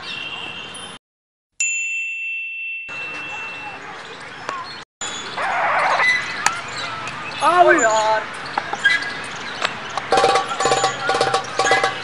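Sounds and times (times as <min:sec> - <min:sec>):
bell-like ding: 0:01.6 - 0:03.8.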